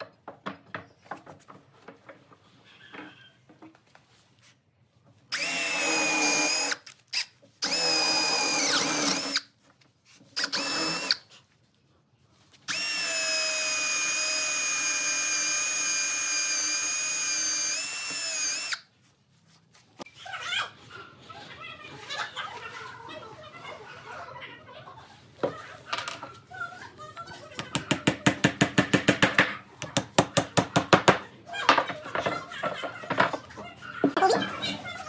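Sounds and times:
electric drill boring into wood: 0:05.3 - 0:06.8, 0:07.6 - 0:09.4, 0:10.4 - 0:11.2, 0:12.7 - 0:18.8.

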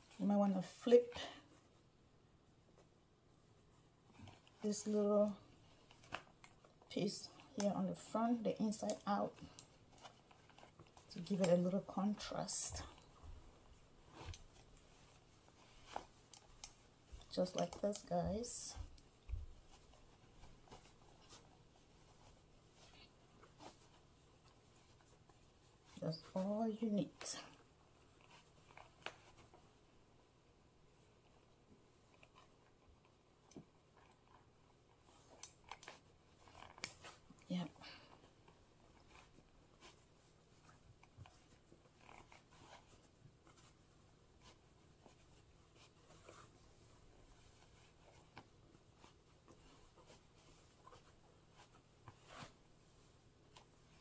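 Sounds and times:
fabric rustling: 0:00.0 - 0:54.0.

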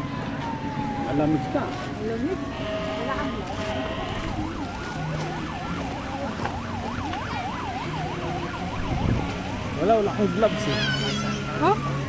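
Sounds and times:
emergency vehicle siren: 0:00.0 - 0:12.0.

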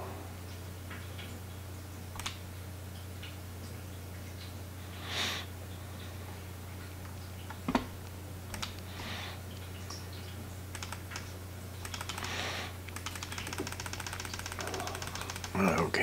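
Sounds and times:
steady low electrical hum: 0:00.0 - 0:16.0
computer keyboard and mouse clicks: 0:02.2 - 0:02.4, 0:08.5 - 0:08.8, 0:10.7 - 0:12.3, 0:12.9 - 0:15.9
soft breaths: 0:08.8 - 0:09.5, 0:12.1 - 0:12.8.

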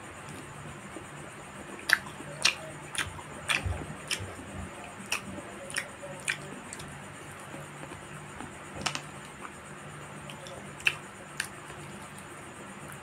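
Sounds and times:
mouth clicks and smacks: 0:01.8 - 0:04.4, 0:05.0 - 0:08.0, 0:10.2 - 0:11.8
person chewing: 0:01.8 - 0:04.4, 0:05.0 - 0:08.0.

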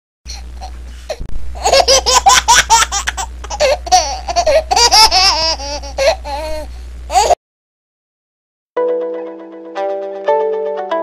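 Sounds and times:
steady low hum: 0:00.3 - 0:07.4.

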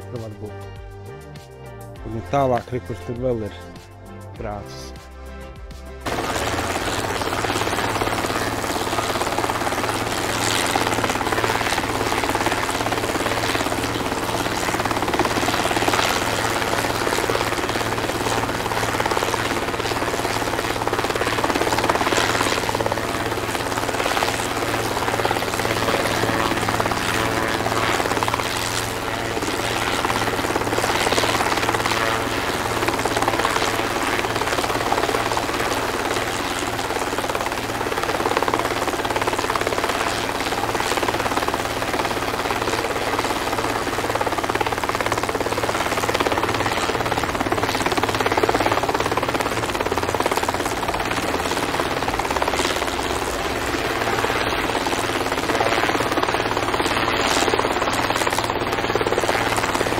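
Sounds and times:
drone propellers buzzing: 0:00.0 - 0:59.9.

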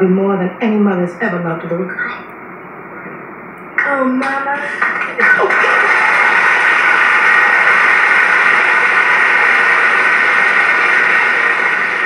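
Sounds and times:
studio audience applauding: 0:04.7 - 0:12.0.

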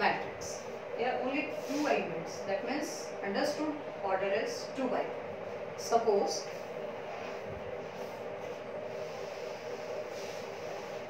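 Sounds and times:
steady background hum: 0:00.0 - 0:11.0
chalkboard being wiped: 0:01.5 - 0:02.1, 0:07.1 - 0:11.0.

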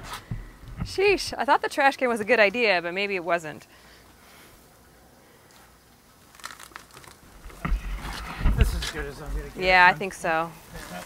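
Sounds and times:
plastic trash can rustling and scraping: 0:06.4 - 0:11.0.

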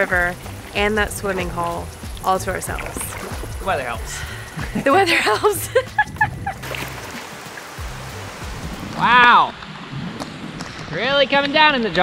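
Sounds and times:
background music with bass: 0:00.0 - 0:09.6
heavy rain on water: 0:00.0 - 0:11.8.

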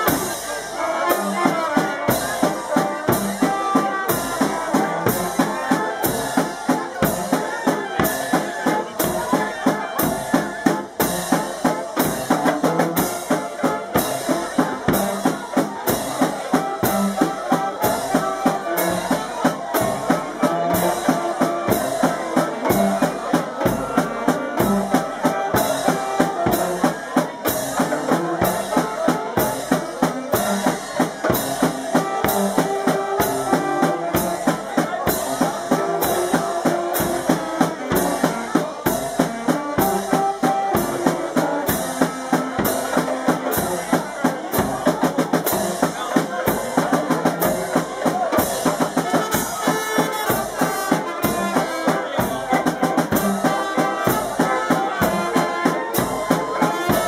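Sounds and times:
saxophones and trumpets melody: 0:00.0 - 0:44.9, 0:45.5 - 0:57.0
brass band playing lively tune: 0:00.0 - 0:57.0
snare and bass drum beat: 0:00.0 - 0:57.0.

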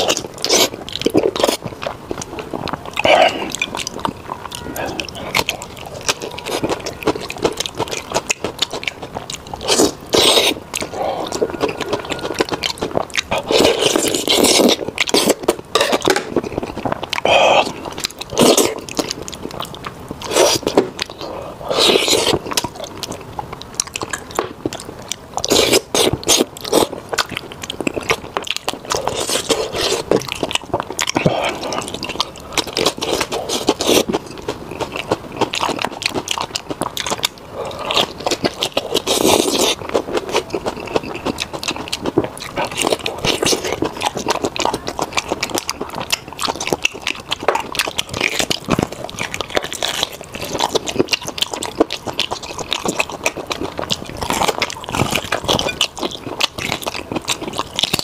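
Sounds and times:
wet chewing and lip-smacking: 0:00.0 - 0:58.0.

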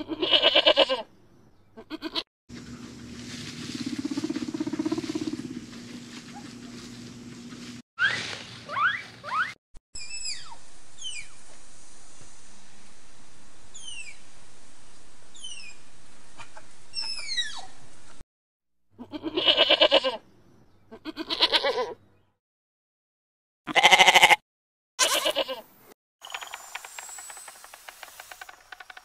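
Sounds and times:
loud wavering bleats: 0:00.0 - 0:01.1, 0:01.8 - 0:02.2, 0:19.0 - 0:20.2, 0:20.9 - 0:22.0, 0:23.7 - 0:24.4, 0:25.0 - 0:25.6
guinea pig squeaks: 0:08.8 - 0:11.3.

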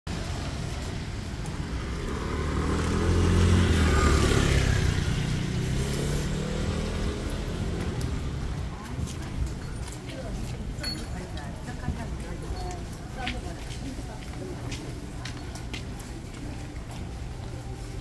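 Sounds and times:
motor scooter passing: 0:00.1 - 0:08.6.

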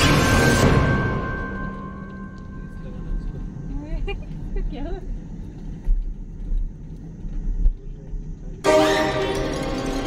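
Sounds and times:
car driving on road: 0:00.7 - 0:08.7.

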